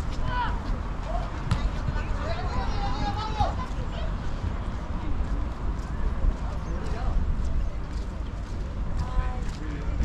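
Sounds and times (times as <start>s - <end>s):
faint voices of passers-by: 0.0s - 10.0s
footsteps on stone paving: 4.7s - 10.0s.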